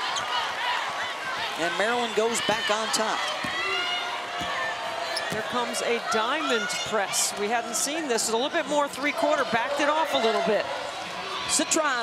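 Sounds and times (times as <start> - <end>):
arena crowd murmur: 0.0 - 12.0.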